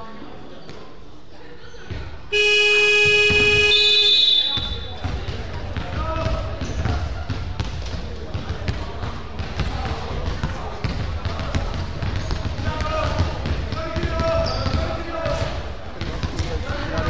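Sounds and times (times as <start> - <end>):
basketballs bouncing on wooden court: 1.9 - 4.0, 4.6 - 17.0
scoreboard buzzer: 2.3 - 4.1.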